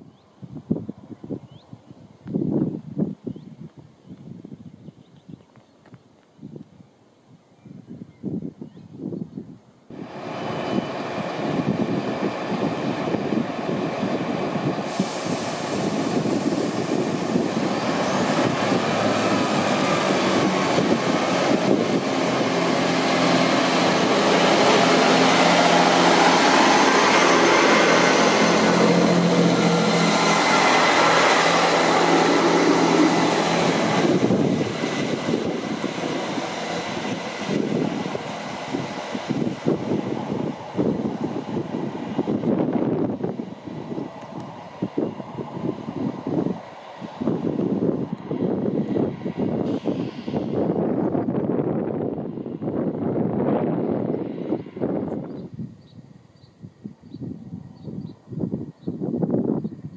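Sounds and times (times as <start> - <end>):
diesel train engines: 9.9 - 56.4
faint rising whine: 10.0 - 47.4.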